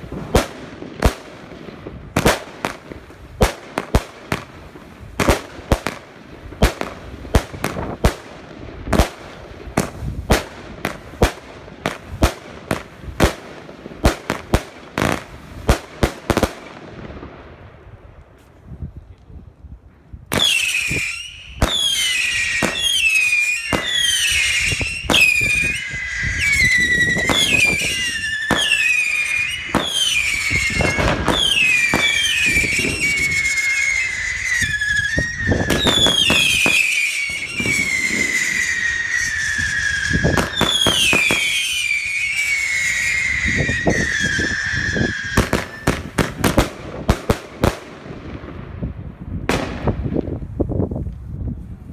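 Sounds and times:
falling firework whistles: 20.3 - 47.8
fireworks banging: 20.3 - 50.6.

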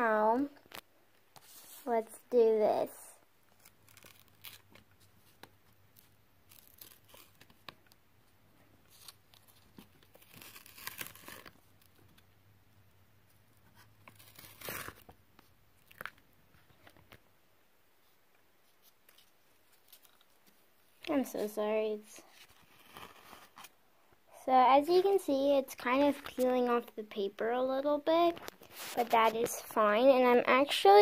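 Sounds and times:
tape peeling off paper: 3.5 - 8.0, 8.9 - 12.2, 13.7 - 16.2, 22.3 - 23.7.

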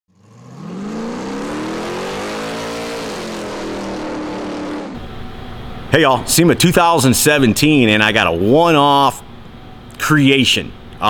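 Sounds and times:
car engine revving: 0.1 - 5.0.

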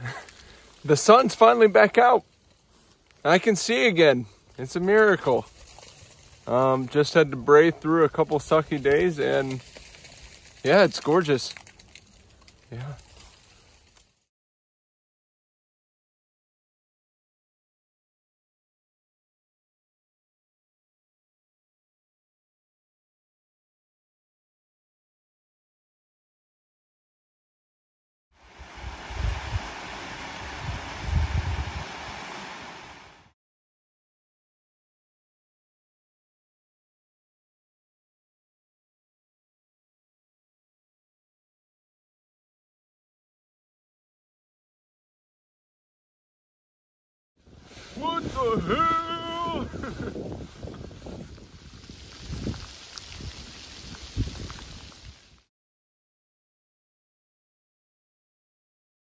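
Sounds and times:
footsteps through dry leaves: 5.1 - 6.8, 8.3 - 14.2, 49.7 - 55.4
wind blowing over microphone: 28.4 - 33.2, 47.4 - 55.4.

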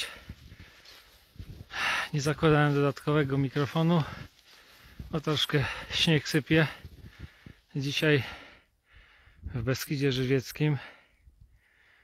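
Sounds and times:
man speaking: 2.1 - 4.3, 5.1 - 6.9, 7.7 - 8.4, 9.5 - 11.0.

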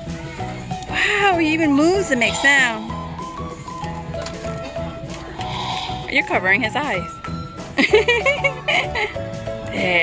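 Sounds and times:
background music of held notes: 0.0 - 10.0.

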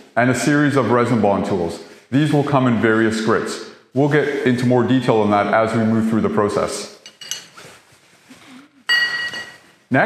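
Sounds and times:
metal clink on concrete: 7.0 - 7.6, 8.9 - 9.6.

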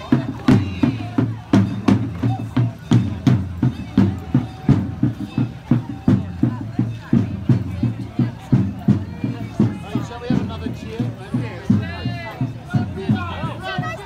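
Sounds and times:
crowd voices: 0.0 - 14.0
marching drums beating: 0.0 - 14.0.

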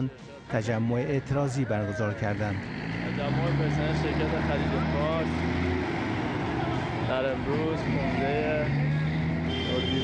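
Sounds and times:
men talking: 0.0 - 10.0
vehicle engine humming: 2.1 - 10.0.

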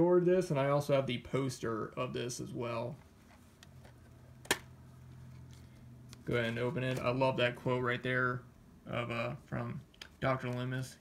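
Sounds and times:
metal case snapping open: 4.4 - 4.7.

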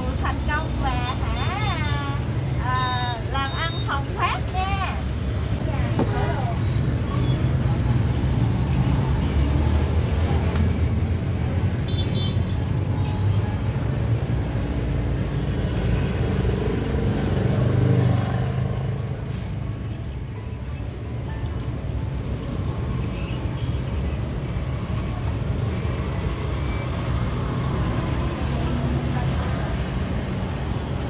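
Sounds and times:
road traffic rumble: 0.0 - 31.0.

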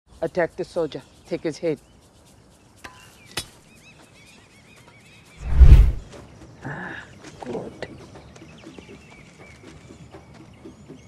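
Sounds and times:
loud heavy thud: 5.4 - 6.0.

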